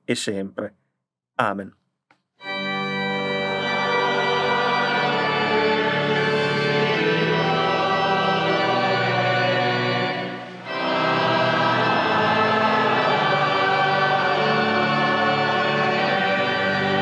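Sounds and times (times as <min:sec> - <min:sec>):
choir singing a hymn: 0:03.1 - 0:17.0.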